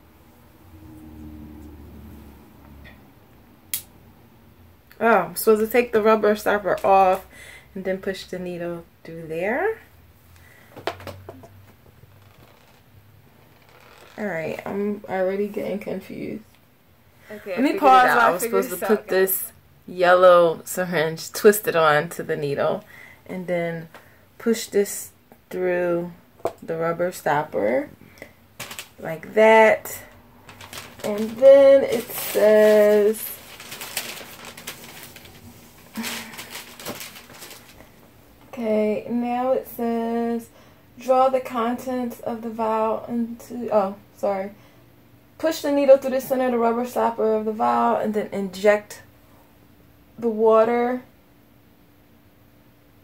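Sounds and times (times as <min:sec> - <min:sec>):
low steady hum: 0:00.0 - 0:53.0
plastic clicks and rustling: 0:28.6 - 0:29.0, 0:30.4 - 0:32.1, 0:36.0 - 0:37.8.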